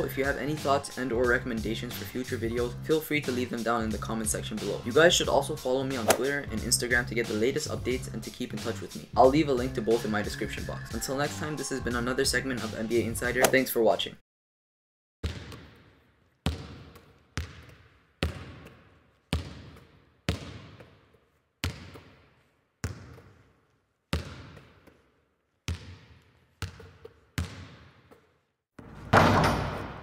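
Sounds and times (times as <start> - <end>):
basketball bouncing on hard court: 15.2 - 28.3.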